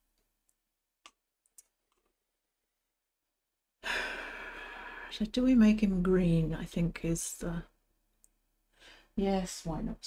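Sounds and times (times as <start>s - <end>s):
long breathy sigh: 3.8s - 5.1s.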